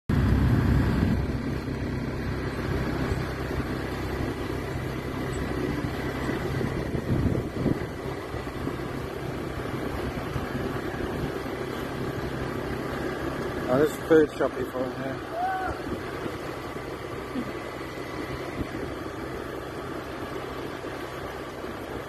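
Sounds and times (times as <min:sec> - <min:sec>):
small motorbike engine running: 0:00.1 - 0:22.0
wind and road noise: 0:00.1 - 0:22.0.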